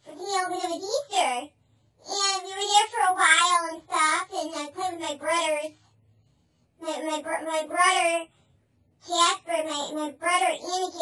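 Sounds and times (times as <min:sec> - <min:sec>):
high child-like voice sing-song: 0:09.1 - 0:11.0.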